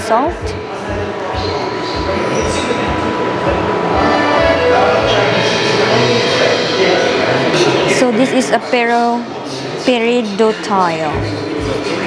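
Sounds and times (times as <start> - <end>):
thin steady tone: 0.0 - 8.7
loud steady rumbling: 0.0 - 9.2.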